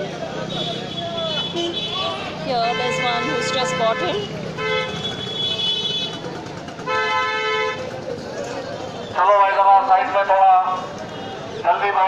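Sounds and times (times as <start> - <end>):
street hubbub: 0.0 - 12.0
vehicle horn honking: 0.5 - 6.2, 6.8 - 7.9.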